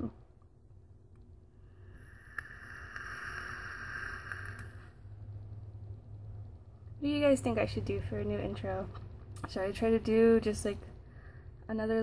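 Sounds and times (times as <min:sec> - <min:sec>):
low steady hum: 0:00.0 - 0:12.0
air hissing through vape: 0:01.7 - 0:05.0.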